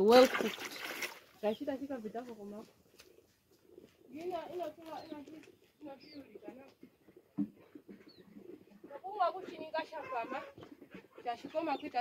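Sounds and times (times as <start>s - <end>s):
person talking: 4.1s - 6.7s.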